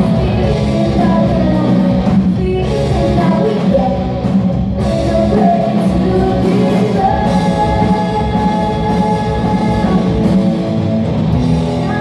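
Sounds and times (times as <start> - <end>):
woman singing: 0.0 - 10.5, 11.7 - 12.0
bass guitar: 0.0 - 12.0
drum kit: 0.0 - 12.0
electric guitars: 0.0 - 12.0.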